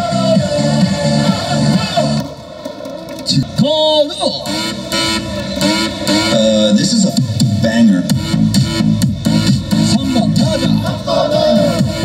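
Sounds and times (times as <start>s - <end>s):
cheer music over loudspeakers: 0.0s - 8.6s
voice over loudspeakers: 3.2s - 4.7s, 6.2s - 8.2s, 9.8s - 11.7s.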